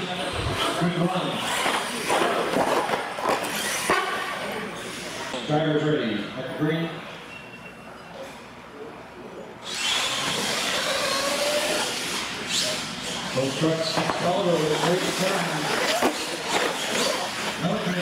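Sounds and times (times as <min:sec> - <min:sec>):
toy truck electric motors whining: 0:01.4 - 0:04.2, 0:09.6 - 0:13.6, 0:14.8 - 0:17.9.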